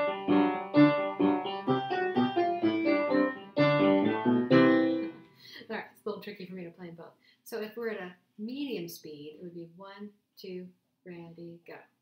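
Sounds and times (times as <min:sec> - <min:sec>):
upright piano playing ragtime: 0:00.0 - 0:05.2.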